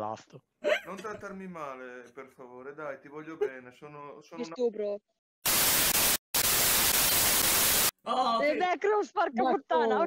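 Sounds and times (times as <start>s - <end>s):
tv static hiss: 5.4s - 7.9s.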